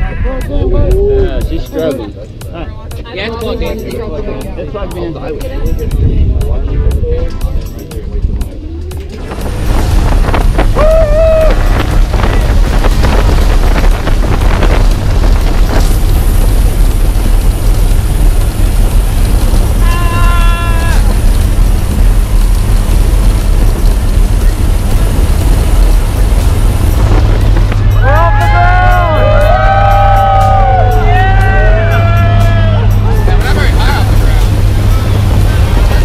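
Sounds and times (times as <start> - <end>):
wind rushing through open door: 5.8 - 32.4
plane engine and propeller: 6.9 - 29.4, 31.7 - 36.0
people whooping and cheering: 10.6 - 12.5, 19.8 - 21.1, 28.0 - 33.4.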